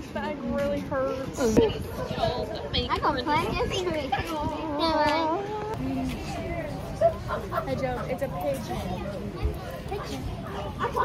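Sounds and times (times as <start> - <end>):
people laughing and exclaiming: 6.5 - 11.0.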